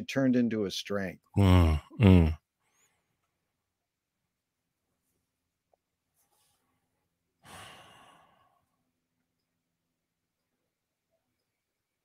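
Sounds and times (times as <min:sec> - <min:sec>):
person sighing: 0:01.4 - 0:02.4, 0:07.4 - 0:08.6.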